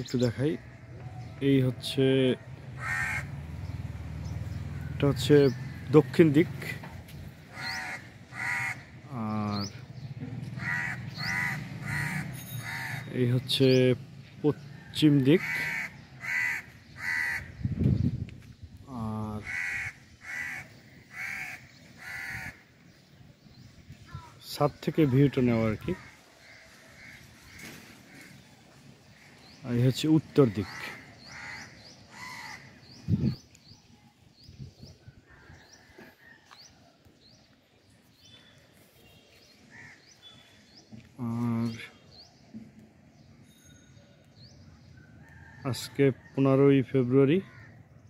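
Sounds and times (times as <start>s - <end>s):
crow cawing: 2.7s - 3.7s, 7.4s - 9.1s, 10.6s - 13.1s, 15.4s - 17.6s, 19.4s - 22.9s, 25.8s - 29.6s, 30.5s - 33.0s, 39.7s - 40.8s, 47.4s - 47.8s
harsh bird call: 2.7s - 6.7s, 7.4s - 13.8s, 14.8s - 17.8s, 19.0s - 23.0s, 24.0s - 33.9s.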